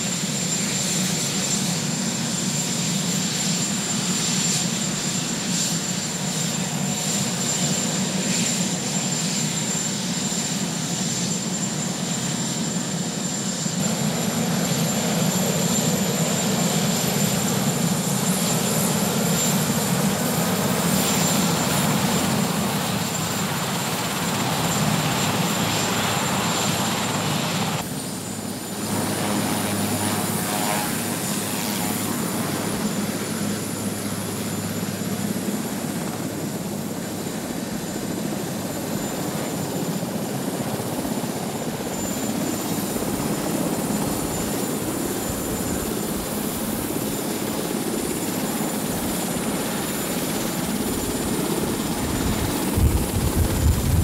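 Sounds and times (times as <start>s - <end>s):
helicopter rotor noise: 0.0s - 54.0s
high turbine whine: 0.0s - 54.0s.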